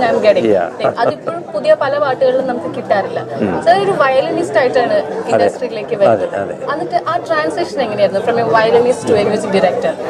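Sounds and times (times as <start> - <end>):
woman talking: 0.0 - 6.1, 6.7 - 10.0
man talking: 0.4 - 1.2, 3.4 - 3.6.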